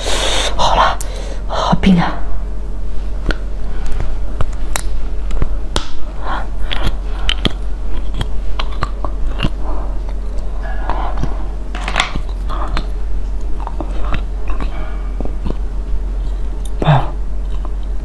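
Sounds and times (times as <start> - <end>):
crunchy chewing of snack stick: 3.3 - 18.0.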